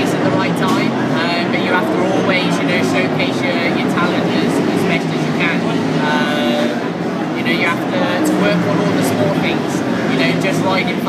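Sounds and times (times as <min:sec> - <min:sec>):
busy room hum: 0:00.0 - 0:11.0
man speaking: 0:00.0 - 0:11.0.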